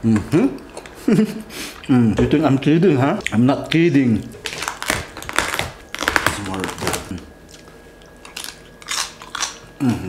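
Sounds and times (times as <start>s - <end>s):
chewing crunchy food: 3.2s - 10.0s
person humming mm: 9.8s - 10.0s.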